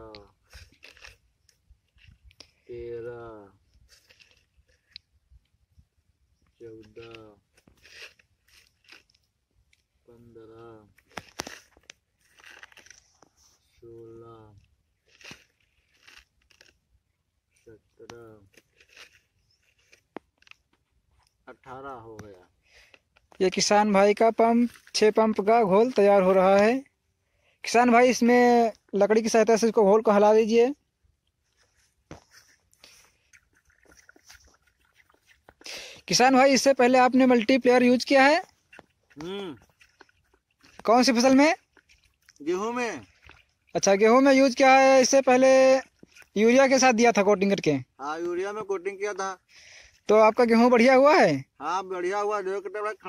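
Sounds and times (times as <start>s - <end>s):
person speaking: 23.3s - 26.9s, 35.6s - 38.5s, 39.1s - 39.8s, 40.6s - 53.0s
wooden stick stirring in bucket: 31.7s - 46.9s.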